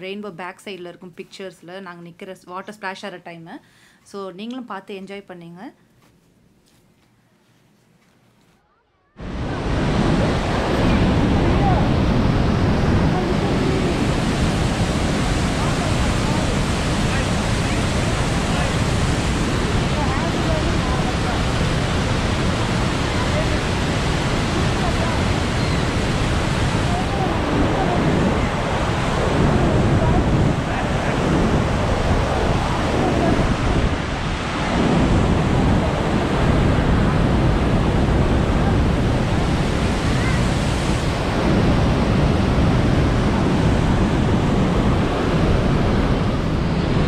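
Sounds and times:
waterfall roaring: 9.2 - 47.0.

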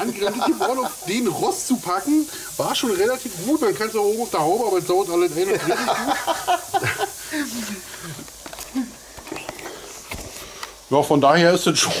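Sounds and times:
person laughing: 0.0 - 1.4, 5.4 - 9.0
steady hiss: 0.0 - 12.0.

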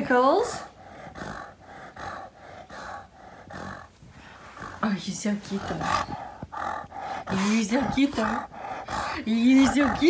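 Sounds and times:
dog breathing noisily: 0.0 - 10.0.

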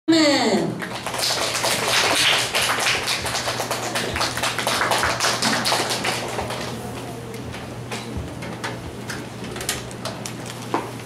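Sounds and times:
audience applauding: 0.8 - 6.8.

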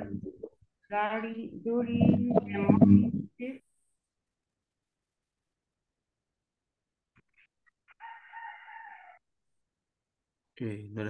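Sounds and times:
rooster crowing: 7.9 - 9.2.

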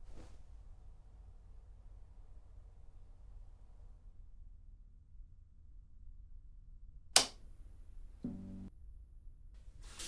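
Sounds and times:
sharp click: 7.2 - 7.4.

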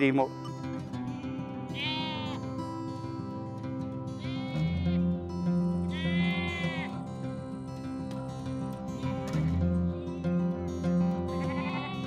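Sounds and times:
background music with held tones: 0.0 - 12.0
sheep bleating: 1.0 - 3.2, 4.0 - 7.4, 8.8 - 9.6, 11.0 - 12.0.

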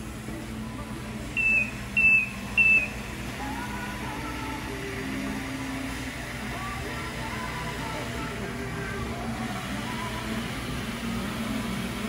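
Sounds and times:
low steady hum: 0.0 - 12.0
floor scrubber beeping: 0.8 - 12.0.

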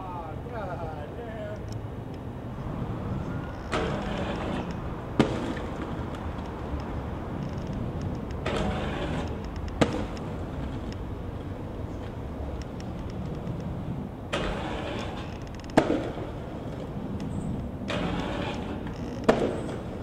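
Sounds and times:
skate wheels rolling on pavement: 0.0 - 20.0
skates grinding a rail: 2.5 - 20.0
skate landing clack: 3.7 - 6.6, 7.8 - 11.0, 14.3 - 20.0.

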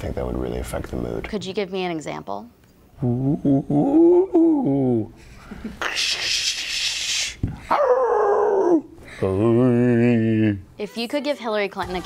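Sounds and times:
man making ghostly howl: 3.1 - 5.1, 7.7 - 10.6
man making breathy whooshing hiss: 5.4 - 7.7.

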